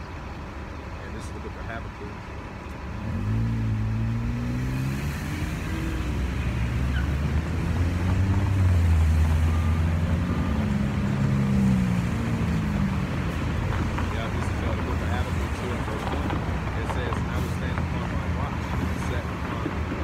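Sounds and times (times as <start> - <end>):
car traffic passing: 0.0 - 20.0.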